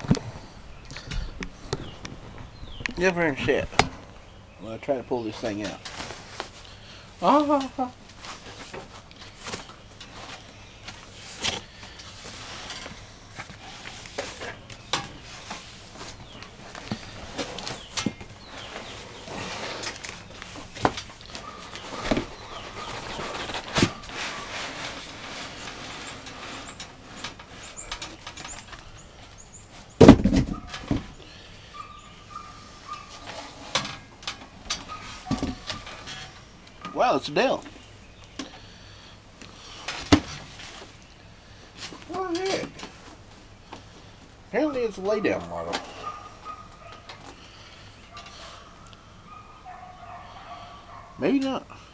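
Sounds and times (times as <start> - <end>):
cardboard box rustling and scraping: 15.2 - 26.8.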